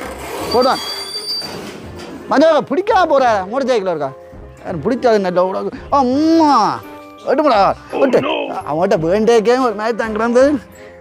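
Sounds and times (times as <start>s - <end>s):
metal gate scraping and squealing: 0.0s - 2.3s.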